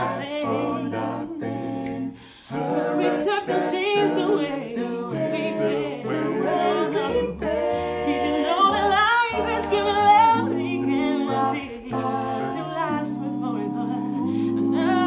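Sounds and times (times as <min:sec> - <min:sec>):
a cappella group singing in harmony: 0:00.0 - 0:15.0.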